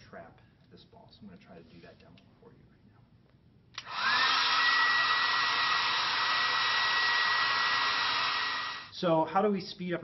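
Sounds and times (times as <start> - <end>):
hair dryer blowing: 3.8 - 8.9.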